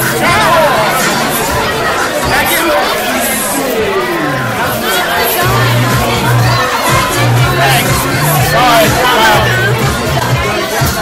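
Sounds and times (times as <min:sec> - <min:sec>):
crowd murmur: 0:00.0 - 0:11.0
people talking over one another: 0:00.0 - 0:11.0.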